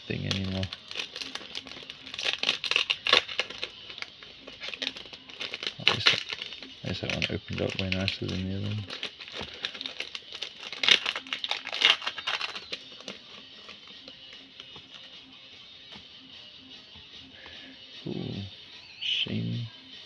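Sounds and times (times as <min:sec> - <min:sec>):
foil wrapper crinkling: 0:00.0 - 0:15.1
quiet background music: 0:00.0 - 0:20.0.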